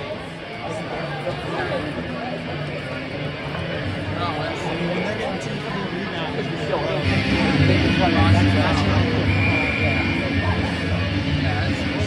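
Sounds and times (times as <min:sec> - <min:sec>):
crowd chatter: 0:00.0 - 0:12.0
music over loudspeakers: 0:06.9 - 0:12.0.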